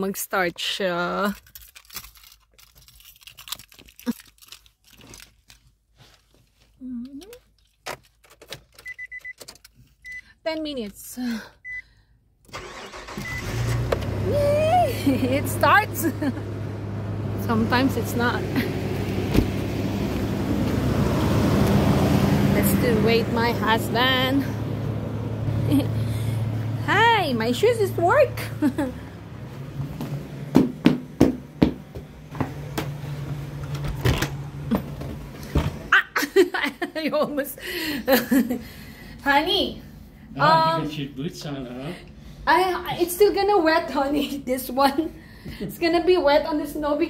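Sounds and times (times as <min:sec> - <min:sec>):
clicks and rustles of handling keys: 0:01.2 - 0:11.0
car warning chime beeping: 0:08.8 - 0:10.3, 0:11.6 - 0:11.9, 0:12.6 - 0:13.7
car engine idling: 0:12.5 - 0:35.5.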